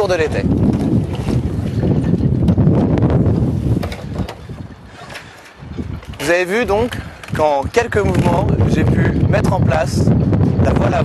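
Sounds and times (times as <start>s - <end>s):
sail flapping: 0.0s - 11.0s
wind noise on microphone: 0.0s - 11.0s.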